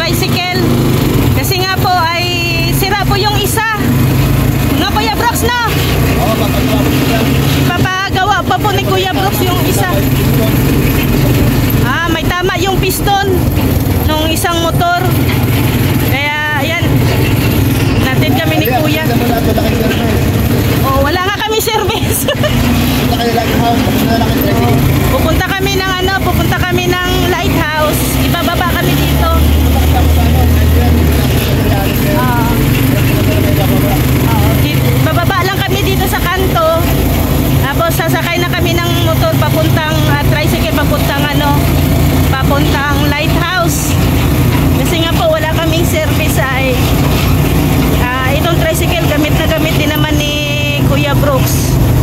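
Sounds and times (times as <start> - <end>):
motorcycle engine running: 0.0 - 52.0
road and wind noise: 0.0 - 52.0.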